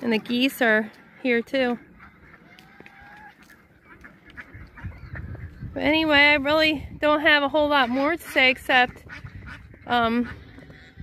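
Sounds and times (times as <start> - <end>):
geese and ducks calling: 0.0 - 11.0.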